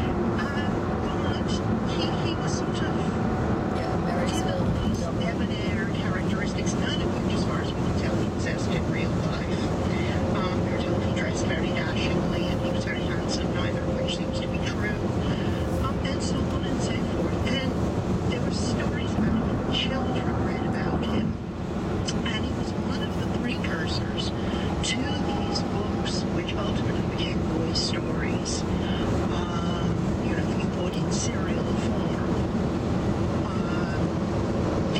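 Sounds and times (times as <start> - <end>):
road and tyre noise in car: 0.0 - 34.9.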